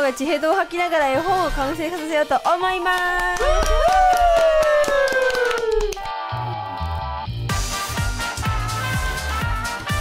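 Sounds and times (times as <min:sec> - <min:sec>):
people clapping rapidly: 0:02.8 - 0:06.2.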